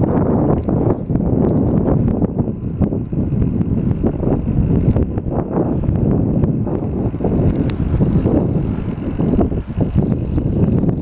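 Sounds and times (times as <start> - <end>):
bicycle rolling over rough asphalt: 0.0 - 11.0
wind noise on microphone: 0.0 - 11.0.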